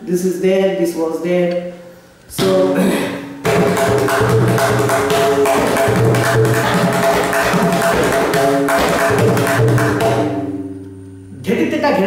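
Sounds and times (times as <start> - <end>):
tabla drums played rapidly: 3.4 - 10.7.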